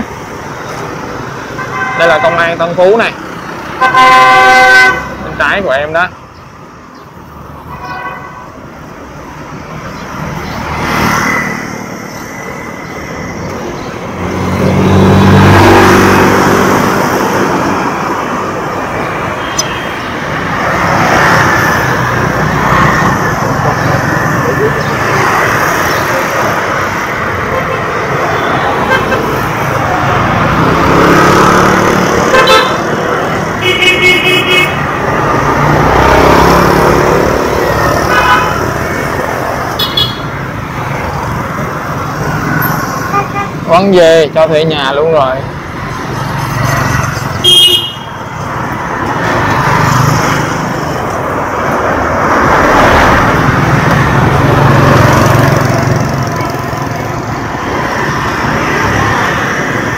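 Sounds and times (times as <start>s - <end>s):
vehicle horn toots: 3.8s - 5.2s, 32.3s - 32.9s, 39.8s - 40.3s, 47.4s - 48.1s
motorbike and car engines passing: 9.3s - 59.9s.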